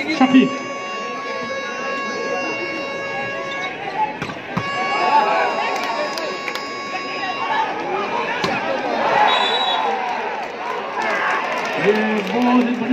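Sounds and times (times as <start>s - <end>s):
steady high tone: 0.0s - 8.2s
spectators shouting: 0.0s - 11.9s.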